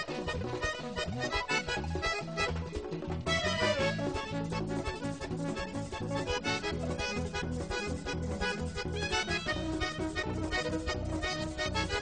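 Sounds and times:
bass line: 0.0 - 12.0
button accordion: 0.0 - 12.0
rhythmic percussion: 0.0 - 12.0.

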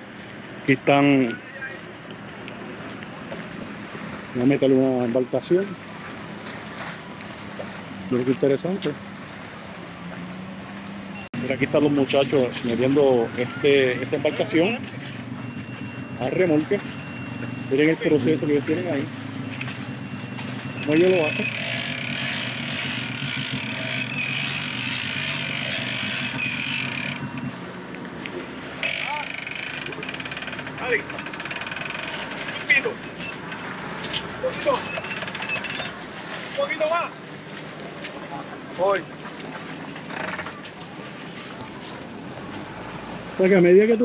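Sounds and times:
distant voices: 0.0 - 44.0
outboard motor churning water: 0.0 - 44.0.

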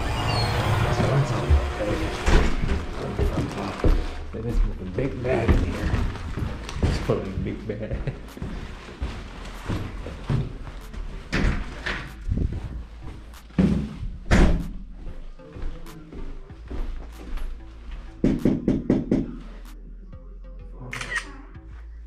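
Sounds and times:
background music: 0.0 - 22.0
footsteps on stairs: 1.0 - 19.4
loud door thud: 14.3 - 14.7.

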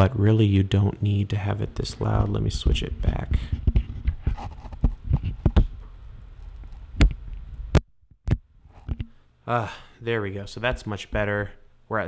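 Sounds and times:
microphone handling clicks and knocks: 2.1 - 9.2.

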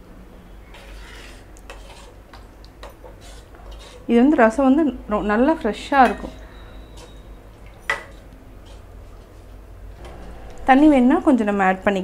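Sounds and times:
metal ladle scraping a pan: 0.7 - 2.2, 3.0 - 4.2, 8.1 - 9.0.

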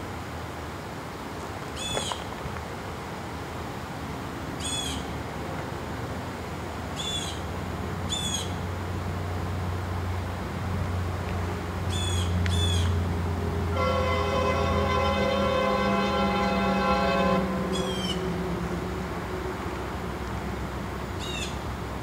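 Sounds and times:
distant locomotive air horn: 13.5 - 20.0.

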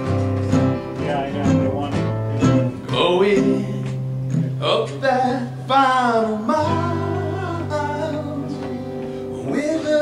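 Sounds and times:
strummed acoustic guitars and mandolin: 0.0 - 10.0.

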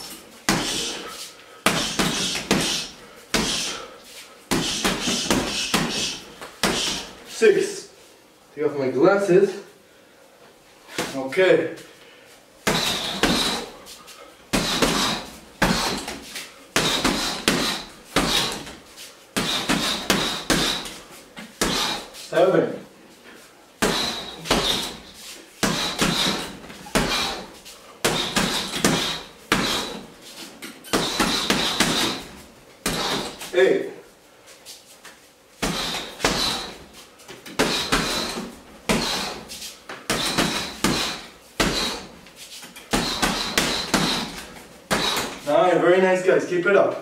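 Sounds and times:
punches thudding on heavy bag: 0.0 - 1.0, 1.6 - 3.8, 4.5 - 7.2, 12.6 - 13.8, 14.5 - 18.8, 19.4 - 22.2, 23.8 - 30.2, 30.9 - 33.5, 35.6 - 42.2, 42.9 - 45.4.

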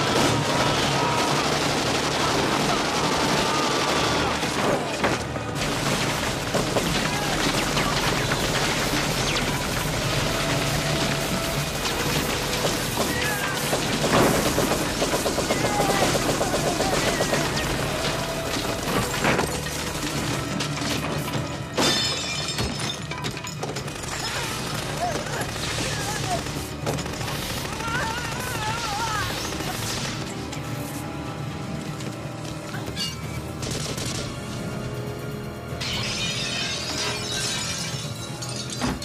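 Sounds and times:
film score music: 0.0 - 39.0
glass shattering: 20.6 - 24.3, 35.8 - 39.0.

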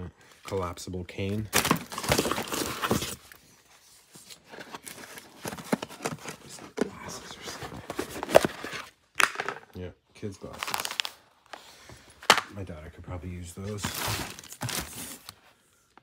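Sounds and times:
plastic wrap crinkling: 10.4 - 11.5.

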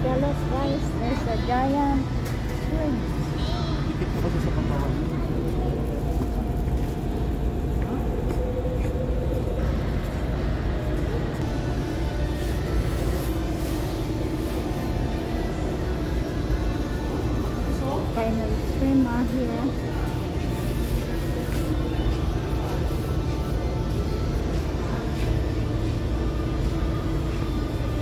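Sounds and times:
low hum and rumble: 0.0 - 28.0.

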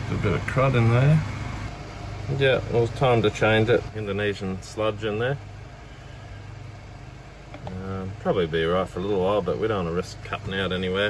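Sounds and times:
man speaking: 0.0 - 1.3, 2.3 - 5.4, 7.6 - 11.0
engine humming: 0.0 - 11.0.

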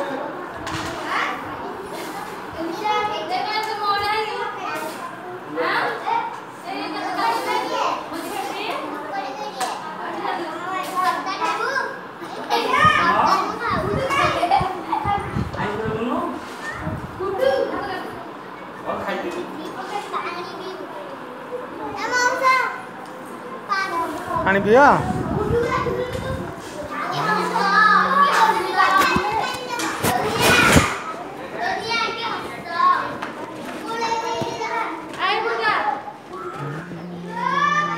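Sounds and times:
children chattering and calling out: 0.0 - 37.9
child shouting: 36.4 - 37.9.

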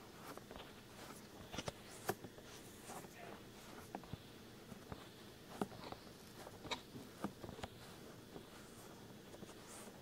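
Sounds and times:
rubbing on microphone: 0.0 - 10.0
soft crackles: 0.0 - 10.0.

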